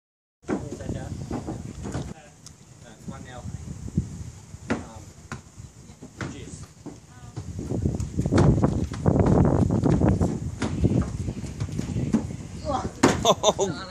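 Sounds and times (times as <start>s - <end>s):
ball bouncing on wooden deck: 4.6s - 12.4s, 13.0s - 13.3s
footsteps scuffing on boards: 6.0s - 12.4s.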